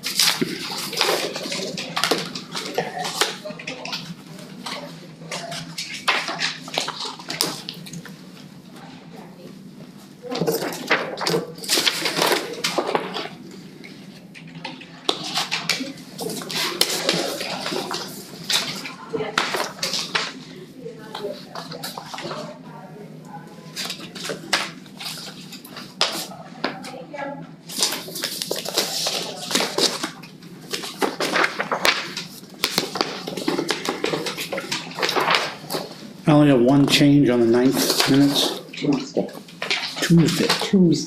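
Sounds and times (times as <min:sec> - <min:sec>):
paper rustling and crinkling: 0:00.0 - 0:08.2, 0:10.2 - 0:22.6, 0:23.7 - 0:26.8, 0:27.6 - 0:36.1, 0:36.9 - 0:41.0.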